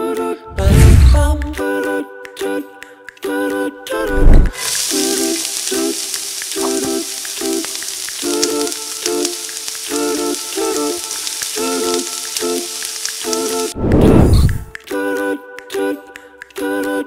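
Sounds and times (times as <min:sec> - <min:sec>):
hummed a cappella music: 0:00.0 - 0:13.7, 0:14.4 - 0:17.0
meat sizzling on grill: 0:04.5 - 0:13.8.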